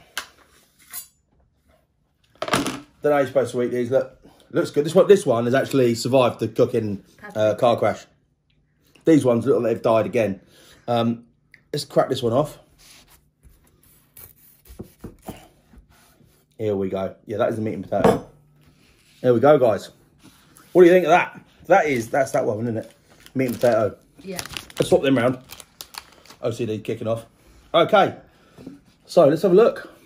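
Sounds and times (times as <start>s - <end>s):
knife blade scraping slide: 0.8s - 1.2s
knife cutting pie crust: 12.8s - 16.2s
crust crackling: 21.8s - 27.1s.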